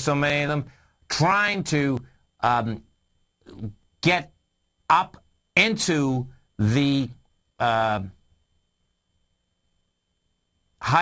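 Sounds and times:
man speaking: 0.0 - 2.9, 3.5 - 8.2.

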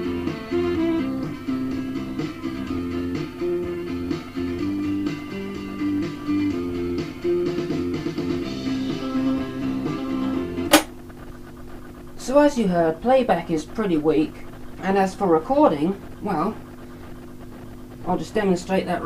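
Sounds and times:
music from tape playback: 0.0 - 19.0
sharp click: 10.7 - 11.1.

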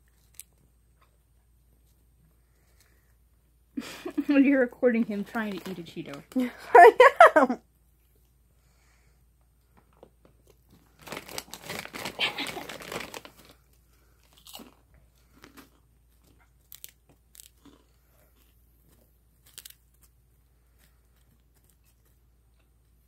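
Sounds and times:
kitten crunching a snack: 0.0 - 3.2, 10.0 - 23.0.

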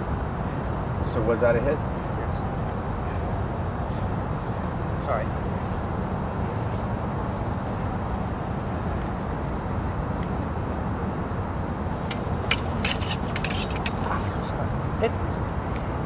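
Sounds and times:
distant traffic: 0.0 - 16.0
wind: 0.0 - 16.0
fencing blades clicking: 11.9 - 14.3.

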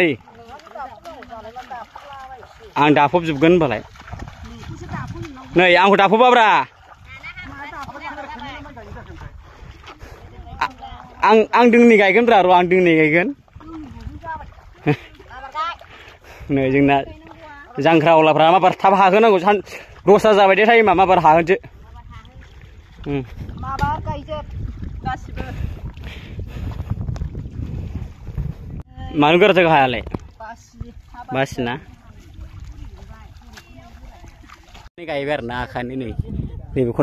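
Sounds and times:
wind buffeting microphone: 1.8 - 17.8, 19.8 - 37.0.

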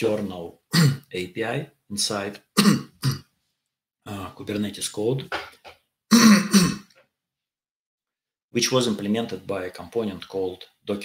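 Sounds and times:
man clearing his throat: 0.7 - 1.0, 2.6 - 3.3, 5.3 - 6.9.

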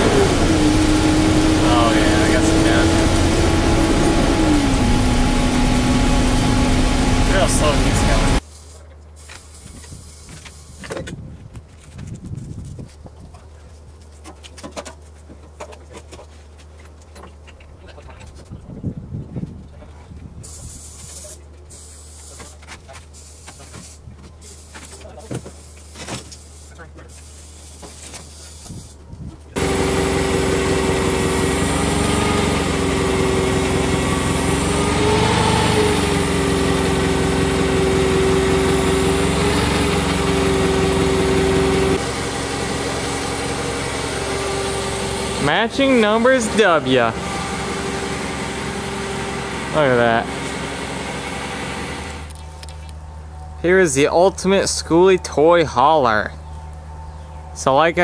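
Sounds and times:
forklift engine running: 0.0 - 8.4, 29.6 - 57.9.

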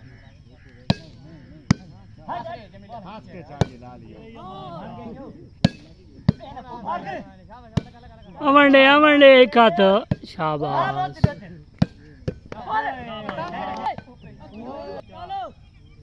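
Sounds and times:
men calling out: 0.0 - 15.7.

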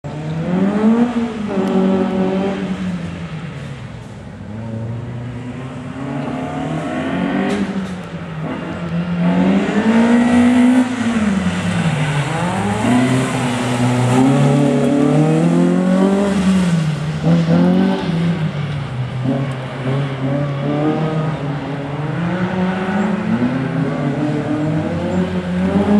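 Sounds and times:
car engine revving: 0.0 - 25.9.

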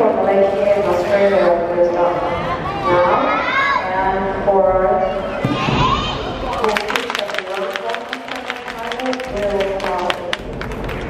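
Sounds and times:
people talking: 0.0 - 10.4
claps: 6.5 - 11.0.

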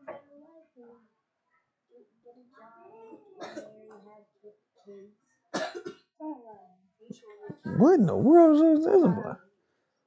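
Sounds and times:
short cough: 5.6 - 6.1
faint voices murmuring: 7.1 - 9.4.

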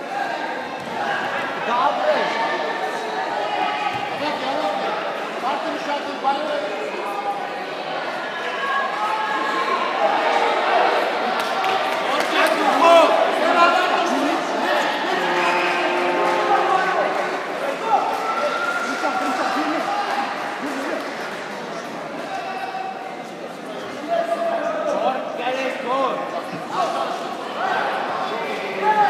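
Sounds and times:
people talking and calling out: 0.0 - 29.0.

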